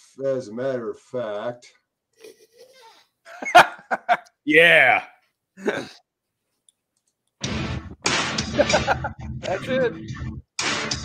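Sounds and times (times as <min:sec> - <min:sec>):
man laughing: 0:03.3 - 0:04.9, 0:05.6 - 0:06.0, 0:08.5 - 0:09.2.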